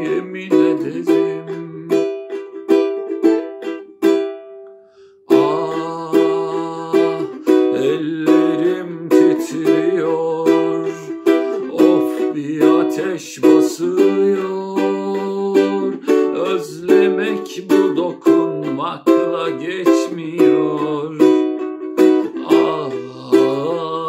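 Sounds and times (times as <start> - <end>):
ukulele strumming chords: 0.0 - 24.0.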